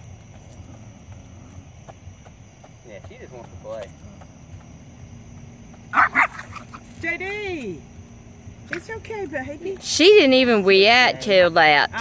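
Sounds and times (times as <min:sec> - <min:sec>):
small dog barking: 0:05.9 - 0:06.8.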